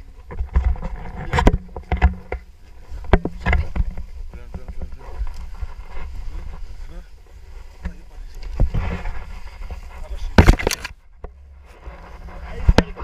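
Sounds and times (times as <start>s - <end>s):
harness straps knocking and rustling: 0.2s - 6.6s, 7.4s - 11.5s.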